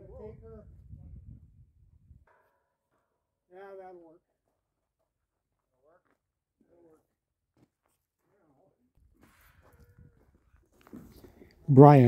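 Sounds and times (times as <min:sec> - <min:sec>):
wind rumble on microphone: 0:00.0 - 0:02.3.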